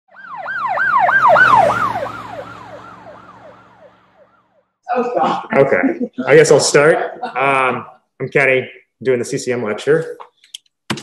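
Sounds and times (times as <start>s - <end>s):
siren yelping: 0.1s - 4.8s.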